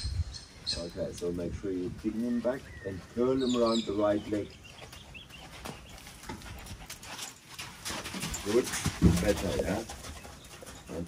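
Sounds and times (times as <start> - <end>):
horse hooves on sand: 0.7 - 11.0.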